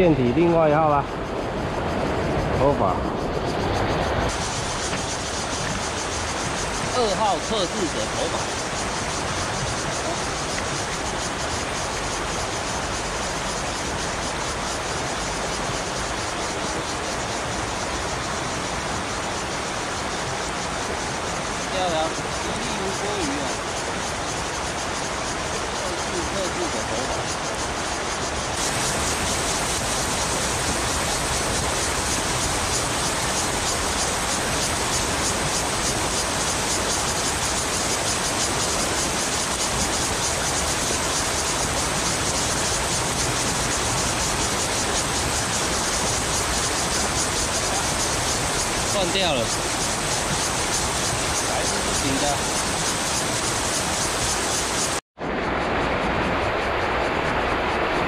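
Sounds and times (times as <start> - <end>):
river rushing over stones: 0.0 - 58.0.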